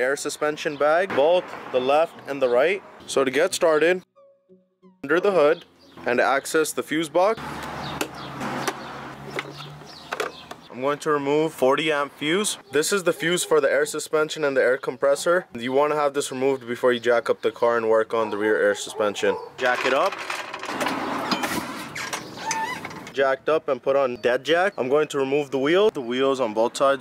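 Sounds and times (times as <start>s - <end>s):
short high squeaks: 21.4s - 23.2s.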